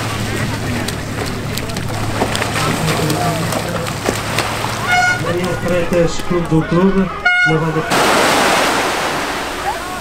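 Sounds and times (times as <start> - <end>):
outdoor background noise: 0.0 - 10.0
voices: 0.0 - 10.0.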